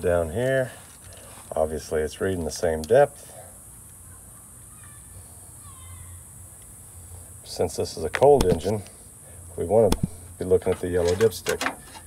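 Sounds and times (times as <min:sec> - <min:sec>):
steady high hiss: 0:00.0 - 0:12.0
steady low hum: 0:00.0 - 0:12.0.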